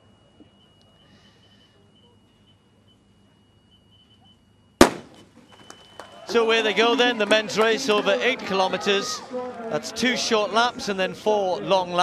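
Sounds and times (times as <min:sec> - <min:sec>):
faint steady high tone: 0:00.0 - 0:04.8
starting pistol shot: 0:04.8 - 0:05.3.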